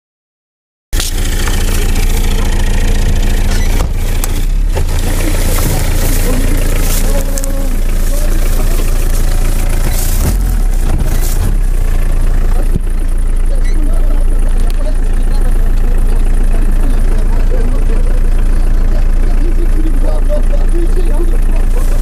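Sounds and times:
rustling: 1.0s - 13.1s
motor running steadily: 1.0s - 22.0s.

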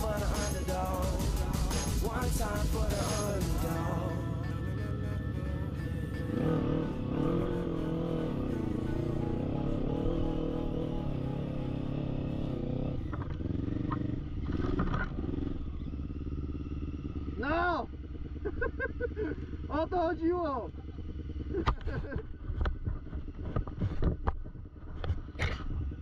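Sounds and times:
background music: 0.0s - 13.0s
quad bike engine revving: 0.0s - 26.0s.

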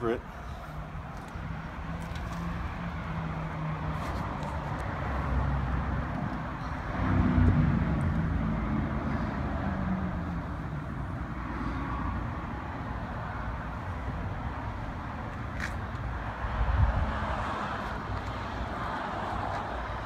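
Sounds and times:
motor vehicle passing by: 6.9s - 10.7s.

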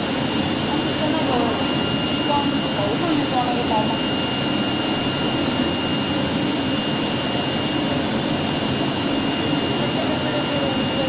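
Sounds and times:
vacuum blower rushing air: 0.0s - 11.0s.

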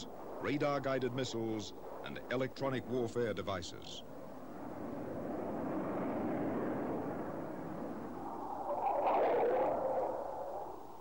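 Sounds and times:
jet engines rushing past: 0.0s - 11.0s.

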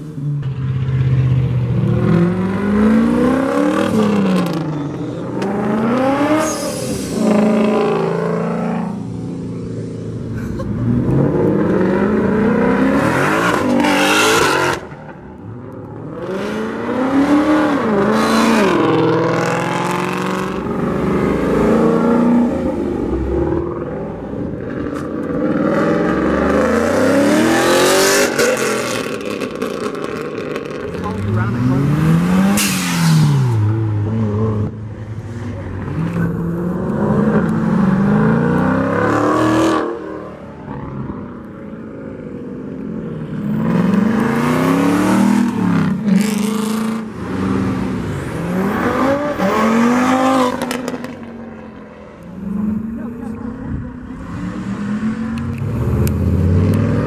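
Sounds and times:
cars accelerating hard: 1.0s - 57.0s.

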